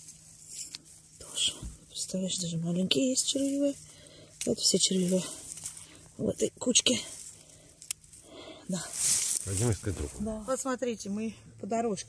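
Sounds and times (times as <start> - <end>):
rustling of dry grass: 0.0 - 10.8
woman speaking: 1.2 - 3.8, 4.4 - 5.5, 6.2 - 7.2, 8.7 - 9.0, 10.2 - 12.0.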